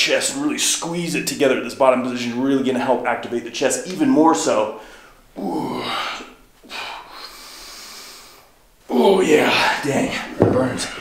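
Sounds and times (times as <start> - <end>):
man breathing hard: 4.8 - 8.6.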